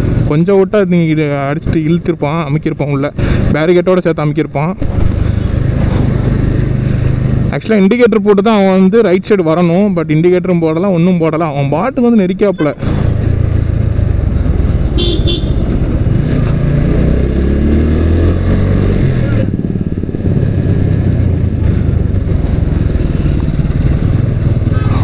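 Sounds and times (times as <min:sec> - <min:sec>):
motorcycle engine accelerating: 0:12.8 - 0:25.0
horn toot: 0:15.0 - 0:15.8.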